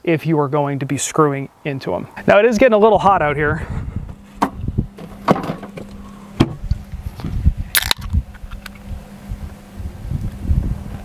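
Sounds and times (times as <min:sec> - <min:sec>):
soda can snapped open hiss: 0:07.7 - 0:08.8.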